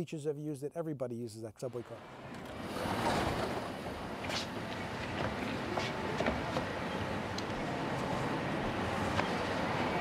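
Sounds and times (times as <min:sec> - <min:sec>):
subway train rushing: 0:02.0 - 0:10.0.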